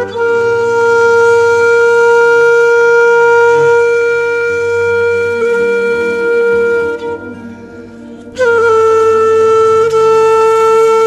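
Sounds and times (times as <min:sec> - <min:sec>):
flute holding long note: 0:00.0 - 0:11.0
low sustained drone: 0:00.1 - 0:10.5.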